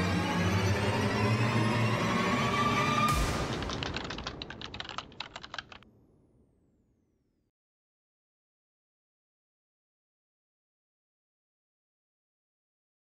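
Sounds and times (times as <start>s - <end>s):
rapid irregular clicks: 3.1s - 5.8s.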